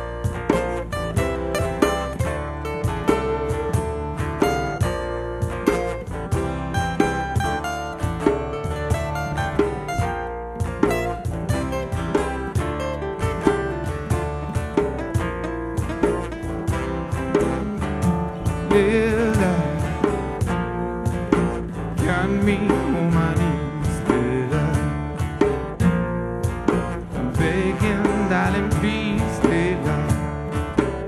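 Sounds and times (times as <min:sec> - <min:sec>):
plucked acoustic guitar: 0:00.0 - 0:31.0
person singing: 0:17.8 - 0:20.3, 0:21.9 - 0:25.2, 0:27.2 - 0:30.5.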